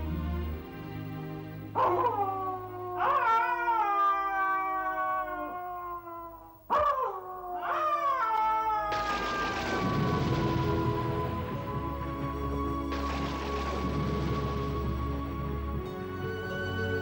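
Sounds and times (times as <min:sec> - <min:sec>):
dog howling: 0:01.8 - 0:11.2.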